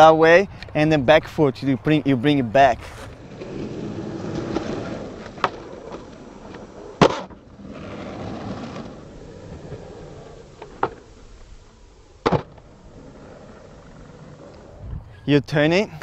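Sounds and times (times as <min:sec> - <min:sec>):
skateboard wheels rolling on concrete: 0:00.0 - 0:16.0
skateboard clacking: 0:02.6 - 0:11.1, 0:12.2 - 0:14.7
skateboard slapping on landing: 0:04.3 - 0:09.0, 0:12.2 - 0:12.6
skateboard tail pop: 0:07.0 - 0:07.4, 0:12.2 - 0:12.6.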